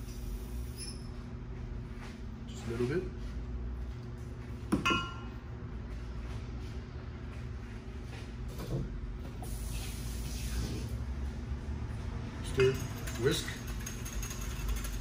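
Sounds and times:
steady low hum: 0:00.0 - 0:15.0
glass cup clinking on counter: 0:04.8 - 0:05.3.

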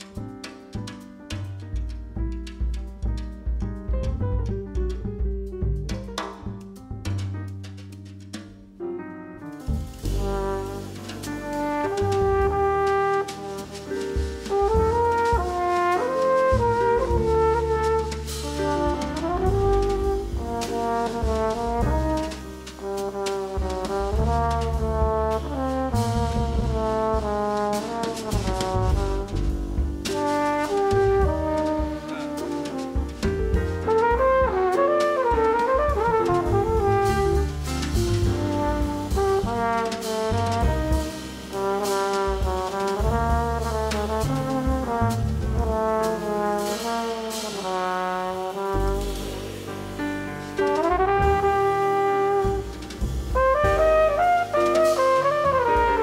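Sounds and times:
upright bass: 0:00.0 - 0:08.1, 0:09.6 - 0:34.8, 0:35.4 - 0:47.0, 0:48.6 - 0:56.0
drum kit with cymbal strikes: 0:00.0 - 0:08.8, 0:09.4 - 0:56.0
piano: 0:00.0 - 0:56.0
flugelhorn melody: 0:10.0 - 0:56.0.

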